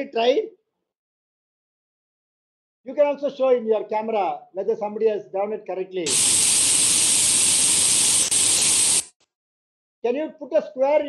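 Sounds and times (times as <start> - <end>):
loud static hiss: 6.1 - 9.1.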